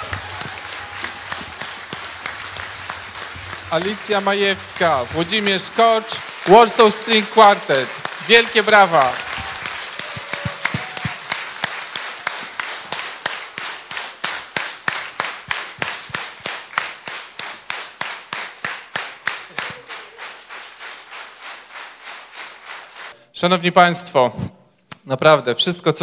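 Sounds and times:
audience clapping in rhythm: 0:00.0 - 0:23.2.

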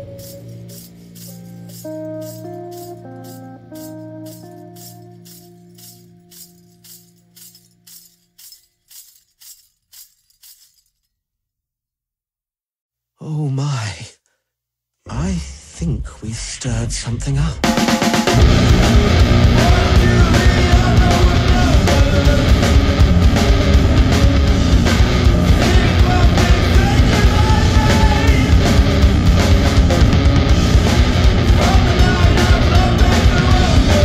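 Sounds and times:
jingling tambourine hits: 0:00.0 - 0:11.1, 0:17.8 - 0:34.0
person speaking: 0:13.2 - 0:14.3, 0:15.0 - 0:17.6
doom metal held notes: 0:18.4 - 0:34.0
steady low drone: 0:18.4 - 0:34.0.

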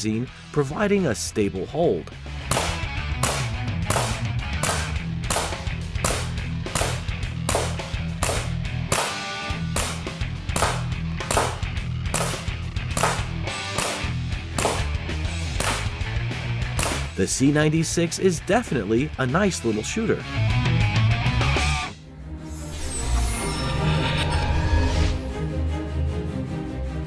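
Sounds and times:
background music with bass line: 0:00.0 - 0:27.0
blowback snap: 0:02.4 - 0:16.1, 0:16.7 - 0:17.2
bb pistol firing: 0:02.5 - 0:15.0, 0:15.6 - 0:16.0, 0:16.8 - 0:17.1.

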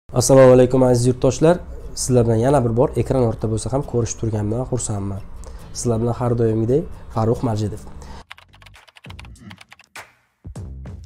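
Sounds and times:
computer keyboard typing: 0:08.2 - 0:10.0.

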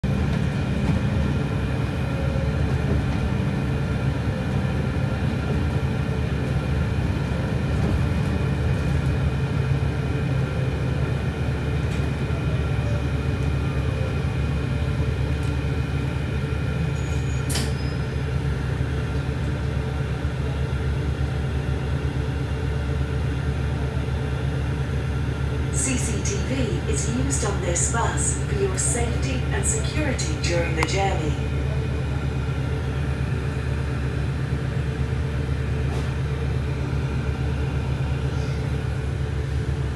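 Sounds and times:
bus engine rumble: 0:00.0 - 0:39.9.

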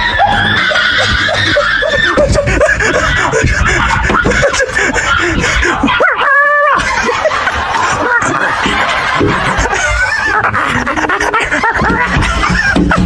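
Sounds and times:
woman laughing: 0:00.0 - 0:13.0.

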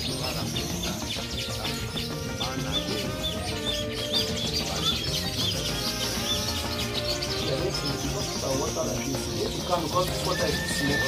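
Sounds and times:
bird chirping: 0:00.0 - 0:11.0
dense background noise: 0:00.0 - 0:11.0.

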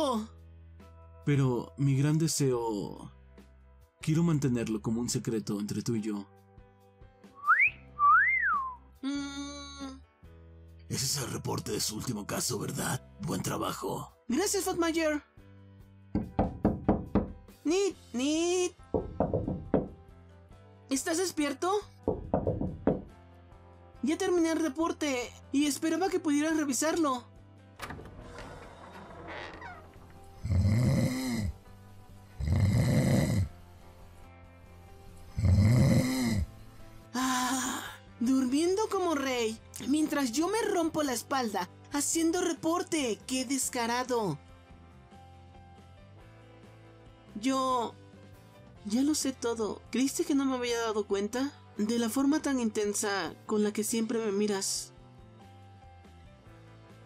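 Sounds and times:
soft background music: 0:00.0 - 0:57.0
sliding whistled note: 0:07.4 - 0:08.8
man snoring: 0:30.4 - 0:33.6, 0:35.3 - 0:36.6.

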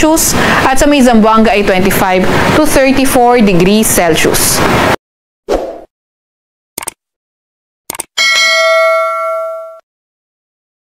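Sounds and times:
notification bell ringing: 0:08.2 - 0:09.8.

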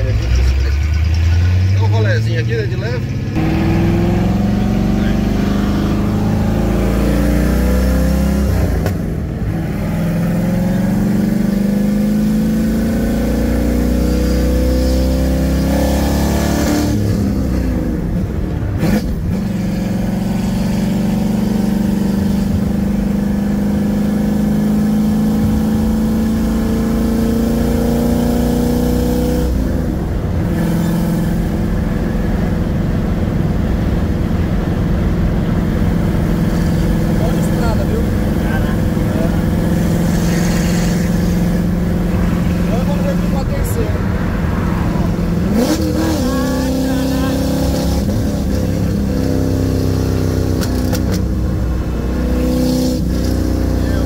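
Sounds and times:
car engine accelerating through gears: 0:00.0 - 0:54.0.

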